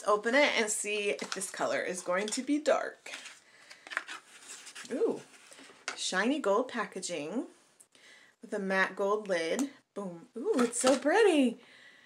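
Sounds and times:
packaging clicks and rustles: 0:03.1 - 0:04.9.

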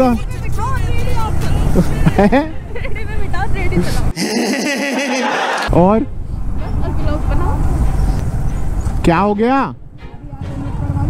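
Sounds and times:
wind rumble: 0:05.7 - 0:11.0.

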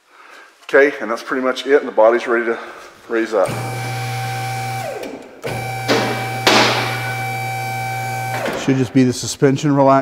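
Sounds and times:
hydraulic pump motor humming: 0:03.4 - 0:08.7.

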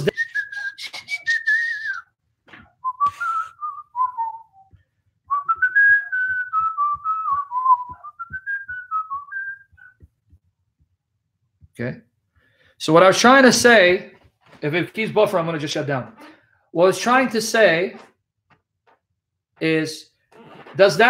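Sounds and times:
man whistling a tune: 0:00.0 - 0:02.2, 0:02.8 - 0:10.0.

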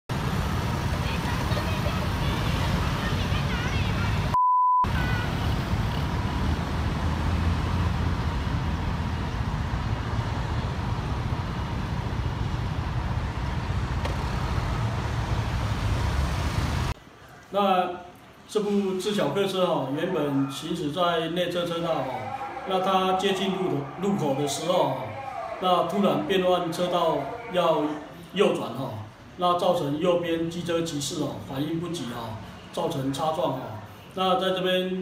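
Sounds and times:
low rumble of passing traffic: 0:00.1 - 0:17.3, 0:19.2 - 0:34.2
censor bleep: 0:04.4 - 0:04.9
faint voices: 0:18.7 - 0:28.4.

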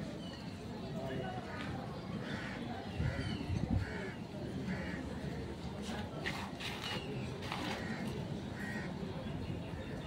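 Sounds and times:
low outdoor background: 0:00.0 - 0:10.0.

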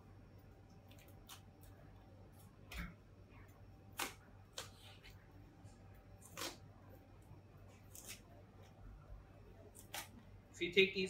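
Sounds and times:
knife crunching through cabbage: 0:06.1 - 0:06.8, 0:07.7 - 0:08.8, 0:09.7 - 0:10.3.

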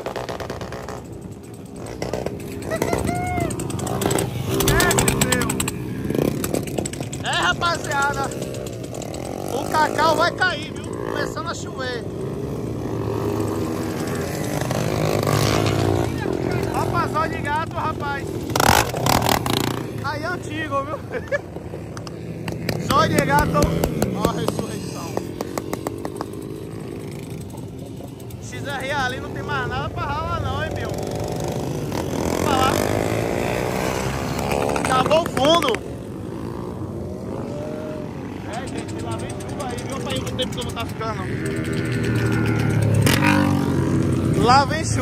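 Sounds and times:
motorcycle engines running low: 0:00.0 - 0:45.0.

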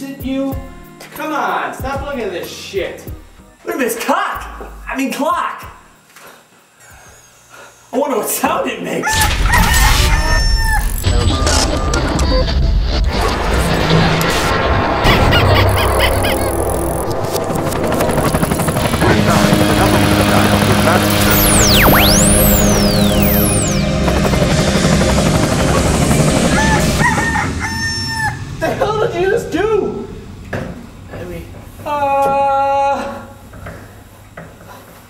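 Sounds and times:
rooster crowing: 0:09.0 - 0:11.0, 0:26.4 - 0:28.6
loud music: 0:13.1 - 0:27.6
whistling pitch glides: 0:21.1 - 0:24.8.

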